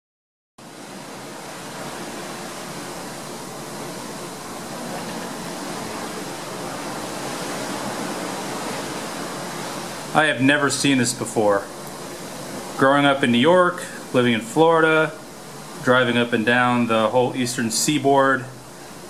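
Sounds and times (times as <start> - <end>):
radio static hiss: 1.6 - 19.0.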